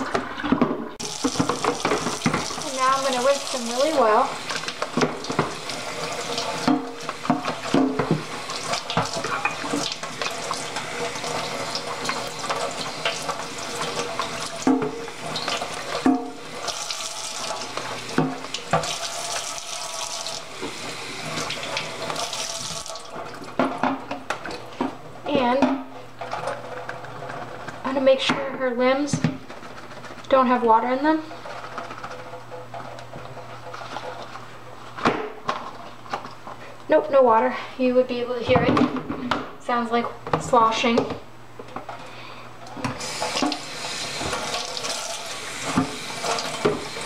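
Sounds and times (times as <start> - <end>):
tap running into sink: 0.0 - 24.3, 42.8 - 47.0.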